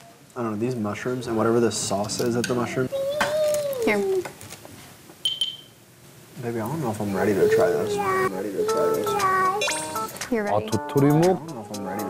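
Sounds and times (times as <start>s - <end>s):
high-pitched electronic beep: 5.2s - 5.7s.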